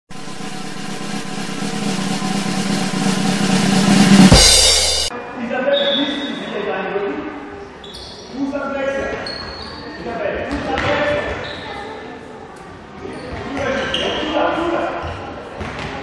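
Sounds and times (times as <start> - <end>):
drum roll ending in loud hit: 0.1 - 5.1.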